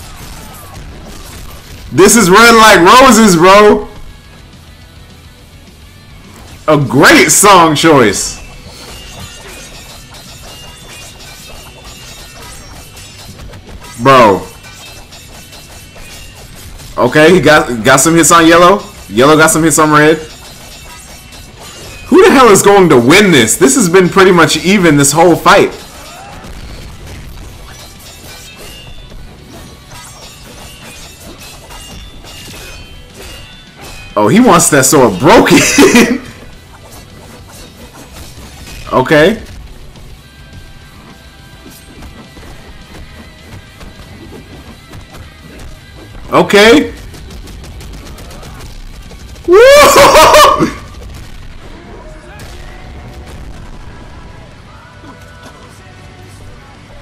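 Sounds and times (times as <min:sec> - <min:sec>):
sharp hits and blasts: 0:00.0 - 0:04.6, 0:06.1 - 0:54.6
sword blades clashing: 0:06.8 - 0:39.6
faint music: 0:51.6 - 0:57.0
background song: 0:54.0 - 0:57.0.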